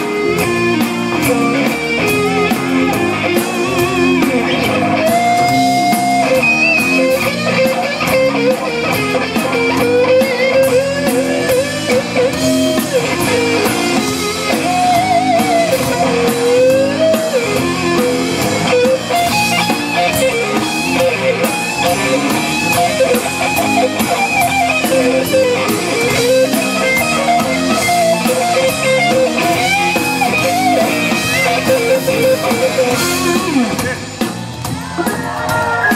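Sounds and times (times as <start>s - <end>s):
bass: 0.0s - 35.9s
drum kit: 0.0s - 35.9s
electric guitar with bending notes: 0.0s - 35.9s.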